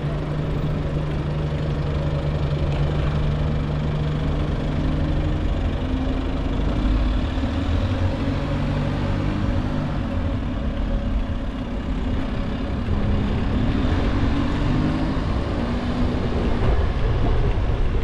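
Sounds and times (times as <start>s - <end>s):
bus engine running: 0.0s - 18.0s
wind and road rumble: 0.0s - 18.0s.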